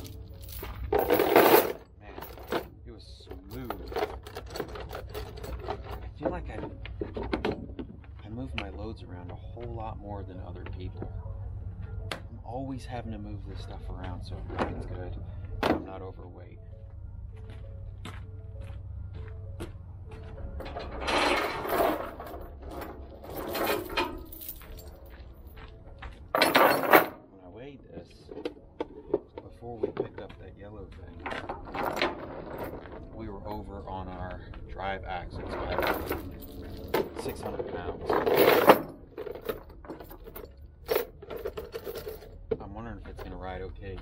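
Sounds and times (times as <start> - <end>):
gear rattling on trailer deck: 0.0 - 8.9, 20.4 - 25.2, 26.2 - 27.2, 31.0 - 33.7, 35.2 - 43.4.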